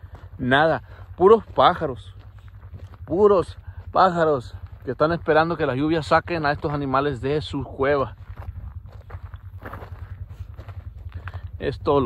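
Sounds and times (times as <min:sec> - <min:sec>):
footsteps on rocky dirt trail: 0:00.0 - 0:12.0
steady low rumble: 0:00.0 - 0:12.0.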